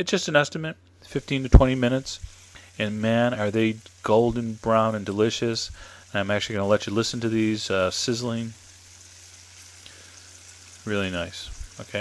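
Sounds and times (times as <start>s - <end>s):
food sizzling in oil: 1.0s - 12.0s.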